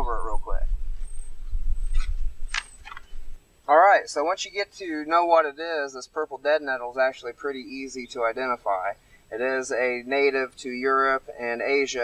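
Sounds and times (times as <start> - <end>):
microphone handling rumble: 0.0 - 3.4.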